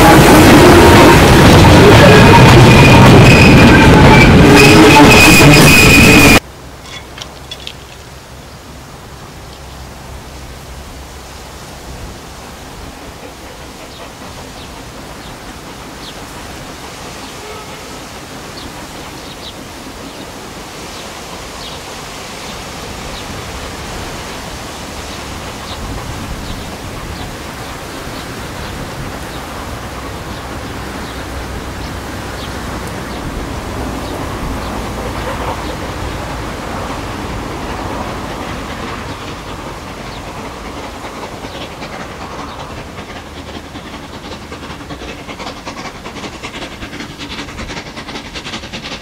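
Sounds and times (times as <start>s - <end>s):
steam locomotive exhaust and running: 0.0s - 49.0s.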